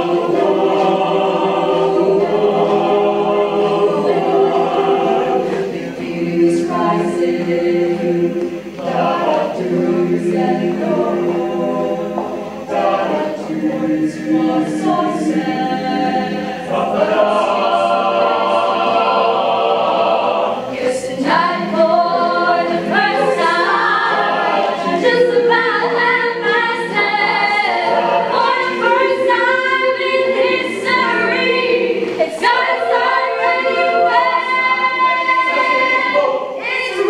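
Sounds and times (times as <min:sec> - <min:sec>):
choir singing a cappella: 0:00.0 - 0:37.0.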